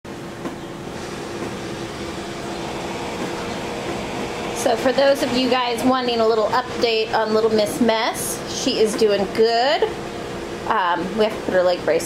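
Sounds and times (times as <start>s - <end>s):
electric fan whirring: 0.1s - 12.0s.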